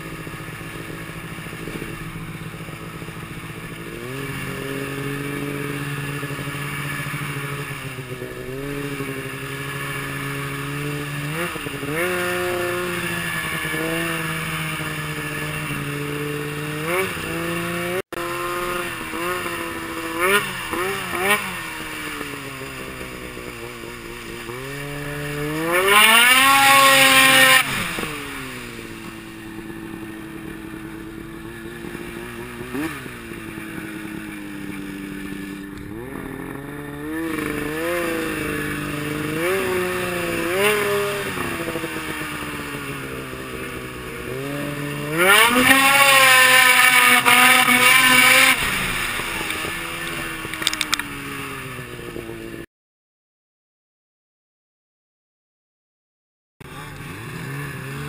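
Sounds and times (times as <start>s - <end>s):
snowmobile engine revving: 0.0s - 52.7s, 56.7s - 58.0s.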